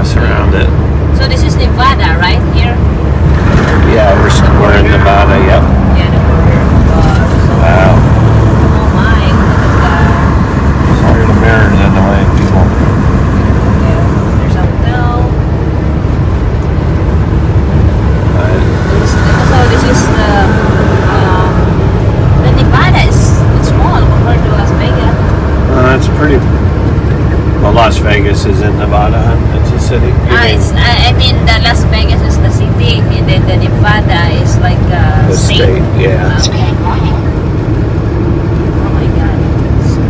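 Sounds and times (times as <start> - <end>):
diesel truck engine rumble: 0.0 - 40.0
tyres on highway: 0.0 - 40.0.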